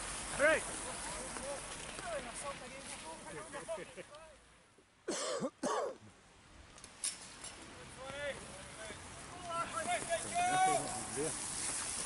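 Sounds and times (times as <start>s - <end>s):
person coughing: 5.1s - 6.0s.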